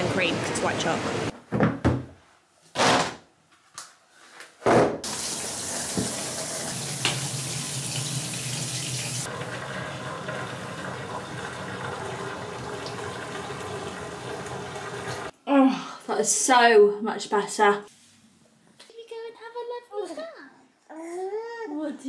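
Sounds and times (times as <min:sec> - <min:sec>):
water pouring into bathtub: 0:05.0 - 0:15.3.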